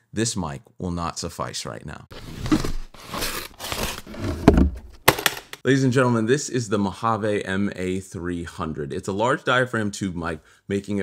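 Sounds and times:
tape and cardboard tearing: 0:02.2 - 0:05.6.

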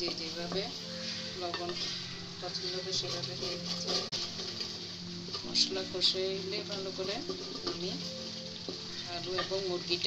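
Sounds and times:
spice paste sizzling: 0:00.0 - 0:10.0
wooden spoon scraping a pot: 0:00.0 - 0:10.0.

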